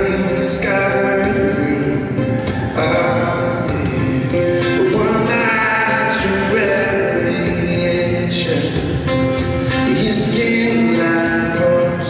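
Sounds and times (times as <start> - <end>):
acoustic guitar strumming: 0.0 - 12.0
man singing: 0.0 - 12.0.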